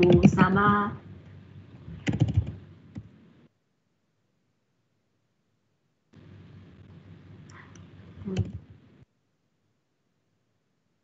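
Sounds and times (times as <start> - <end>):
computer keyboard key taps: 2.0 - 3.1.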